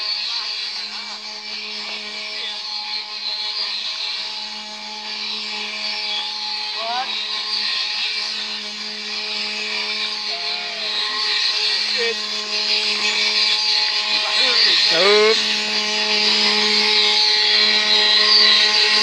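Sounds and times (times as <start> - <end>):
wooden cart axle whining: 8.0 - 19.0
short rising cry: 10.2 - 12.2.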